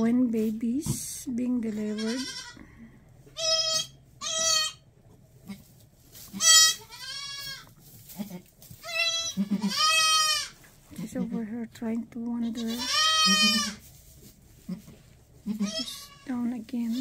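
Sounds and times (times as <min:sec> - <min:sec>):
goat kids bleating: 0:01.7 - 0:05.7, 0:06.3 - 0:11.4, 0:12.4 - 0:13.9, 0:14.6 - 0:17.0.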